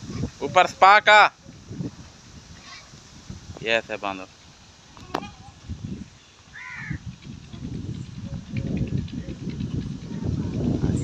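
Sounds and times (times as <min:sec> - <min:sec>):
crow cawing: 0:06.5 - 0:07.0
low bumps and rustling: 0:06.9 - 0:11.0.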